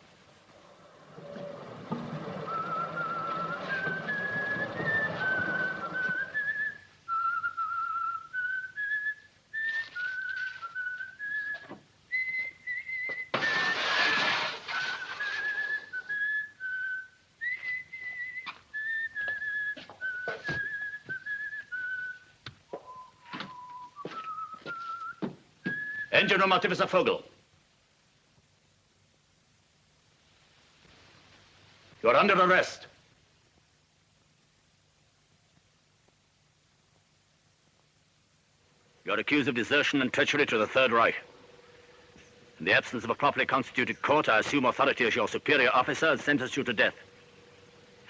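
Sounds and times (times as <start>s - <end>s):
person whistling a tune: 2.4s - 13.7s, 15.0s - 26.2s
short loud rush of noise: 13.3s - 16.4s.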